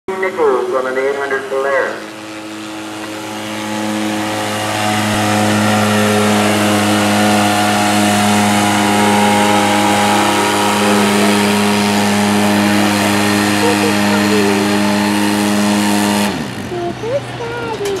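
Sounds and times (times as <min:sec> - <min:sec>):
atv engine at high revs: 0:00.1 - 0:17.5.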